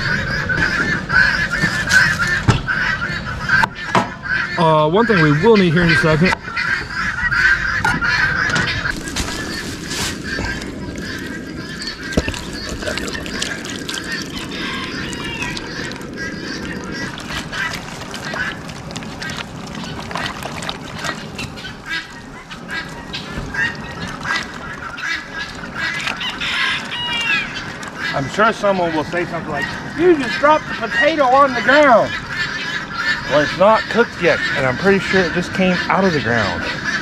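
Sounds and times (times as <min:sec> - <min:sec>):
geese honking: 0:00.0 - 0:37.0.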